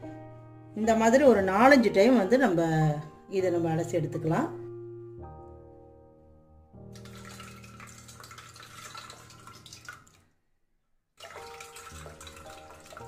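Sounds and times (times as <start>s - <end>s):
liquid splashing and sloshing: 7.0s - 10.2s, 11.2s - 13.0s.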